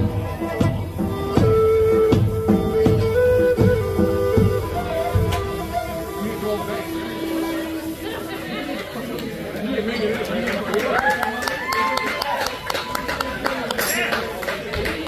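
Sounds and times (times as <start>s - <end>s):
drum kit: 0.0s - 8.0s
flute playing held notes: 0.0s - 9.1s
crowd chatter: 0.0s - 15.0s.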